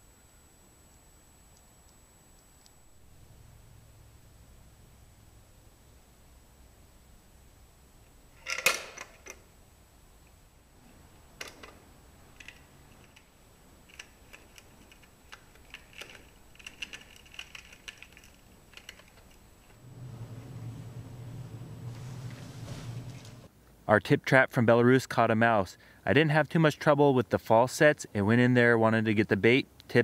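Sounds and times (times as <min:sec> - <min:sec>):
low hum: 0:00.0 - 0:23.6
mouse trap door snapping shut: 0:08.4 - 0:09.4
mouse scratching inside trap: 0:12.4 - 0:19.8.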